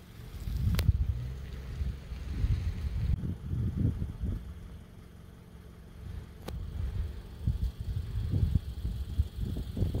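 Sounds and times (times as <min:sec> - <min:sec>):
wind buffeting microphone: 0:00.3 - 0:04.6, 0:06.5 - 0:10.0.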